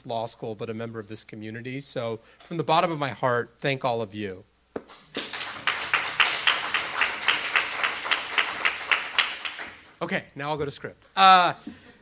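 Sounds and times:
audience applauding: 5.1s - 10.0s
nearby hands clapping steadily: 5.1s - 10.0s.

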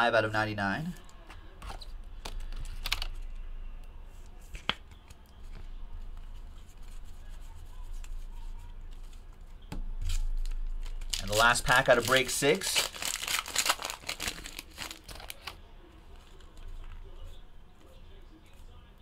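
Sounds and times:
cards clicking and tapping: 4.5s - 6.3s.

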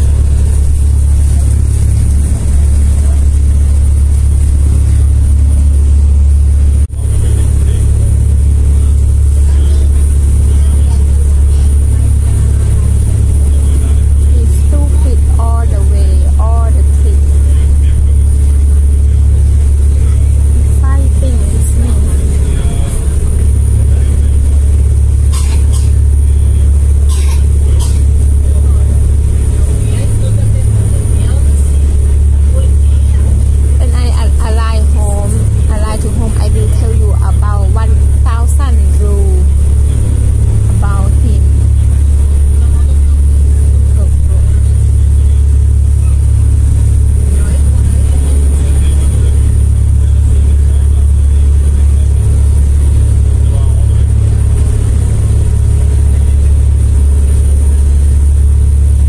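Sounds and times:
faint voices: 0.0s - 6.0s, 6.8s - 59.0s
faint high whine: 0.0s - 59.0s
low vehicle engine drone: 0.0s - 59.0s.

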